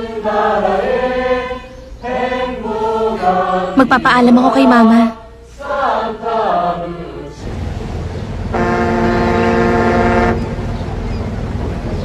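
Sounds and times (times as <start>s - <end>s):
ship's horn blast: 7.4s - 10.7s.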